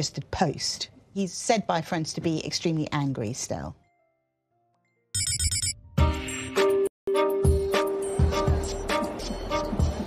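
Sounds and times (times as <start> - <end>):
electronic beeping: 5.2 - 5.9.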